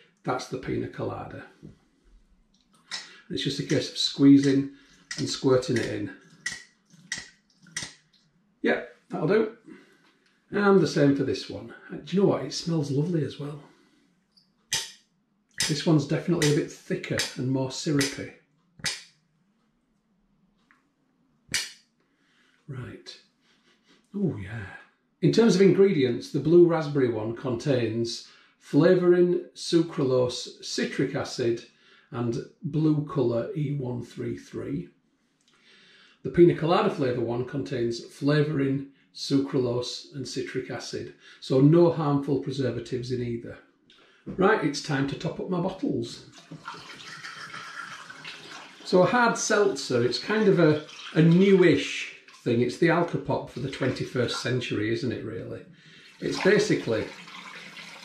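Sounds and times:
water pouring through funnel: 0:46.2 - 0:52.9, 0:55.9 - 0:58.0.

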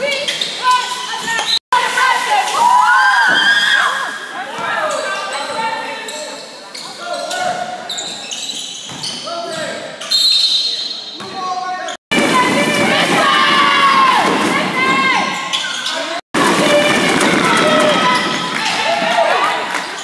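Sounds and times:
sneakers squeaking: 0:00.0 - 0:01.6, 0:04.4 - 0:12.0, 0:14.2 - 0:18.8.

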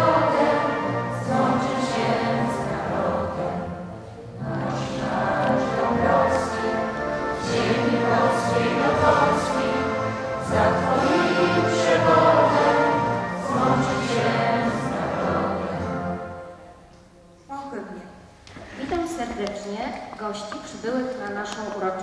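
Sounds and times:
choir singing solemn song: 0:00.0 - 0:16.7.

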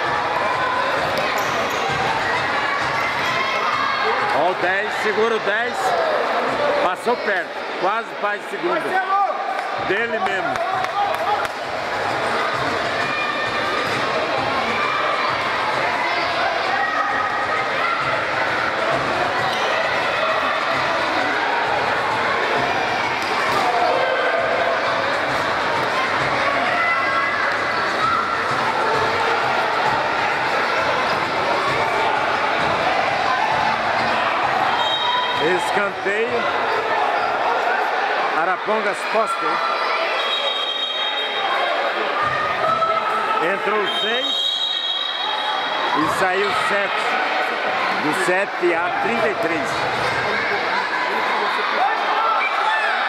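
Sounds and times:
spectators shouting and chattering: 0:00.0 - 0:53.0.

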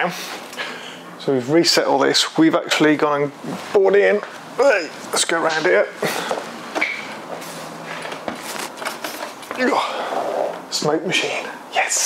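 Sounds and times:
rustling and handling noise: 0:06.2 - 0:09.8.

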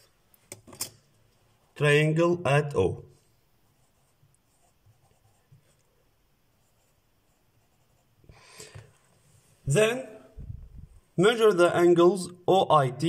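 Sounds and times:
pen scratching on paper: 0:03.6 - 0:05.8, 0:06.6 - 0:08.3.

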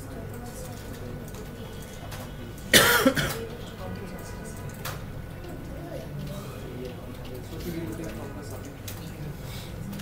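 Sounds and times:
person coughing: 0:02.7 - 0:03.4.

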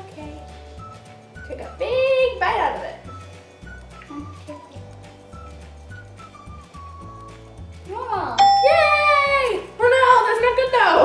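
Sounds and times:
soft background music: 0:00.0 - 0:11.0
bell-like ding chime: 0:08.4 - 0:09.4.

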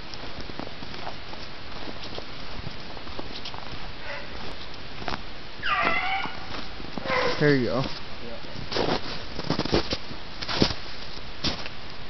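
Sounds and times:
steady rustling hiss: 0:00.0 - 0:12.0
hound baying: 0:04.0 - 0:04.5, 0:05.6 - 0:07.5.

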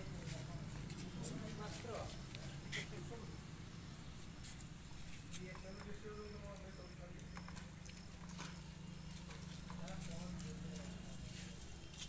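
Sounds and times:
small engine idling: 0:04.8 - 0:11.8.

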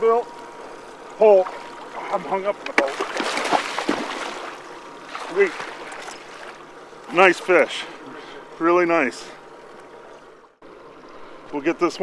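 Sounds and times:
fish thrashing in water: 0:01.4 - 0:06.6.

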